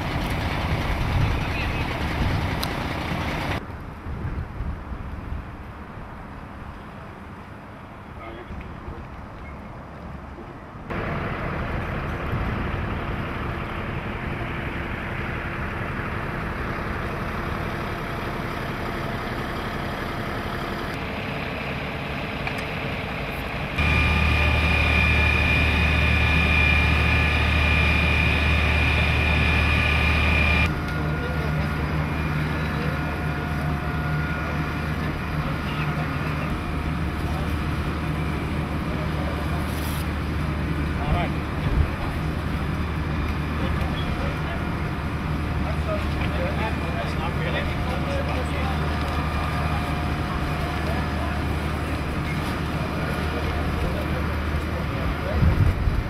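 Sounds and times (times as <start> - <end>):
engines running: 0.0 - 3.7, 10.9 - 56.0
high steady whine: 10.9 - 56.0.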